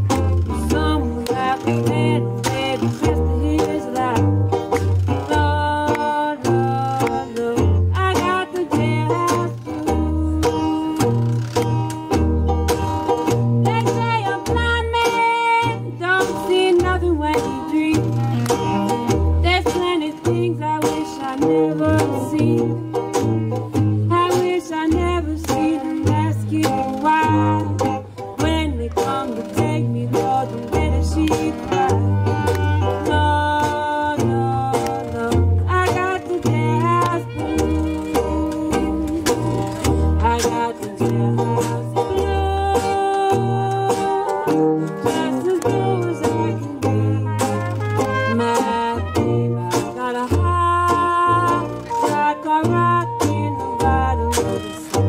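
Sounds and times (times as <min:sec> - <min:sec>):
woman singing: 0:00.0 - 0:11.1, 0:13.5 - 0:23.3, 0:24.0 - 0:55.0
strummed banjo and guitar: 0:00.0 - 0:55.0
sousaphone bass line: 0:16.8 - 0:55.0
cornet playing: 0:21.2 - 0:55.0.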